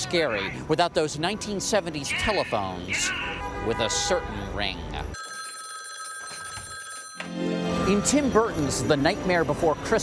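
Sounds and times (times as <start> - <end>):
telephone bell ringing: 5.1 - 7.5.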